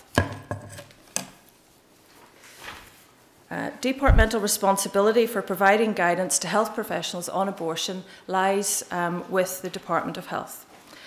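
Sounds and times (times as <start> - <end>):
paper rustling and shuffling: 1.5 - 3.2.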